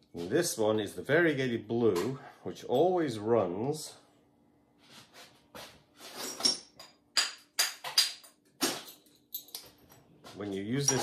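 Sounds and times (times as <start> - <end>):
glazed pottery clinking: 10.8 - 11.0.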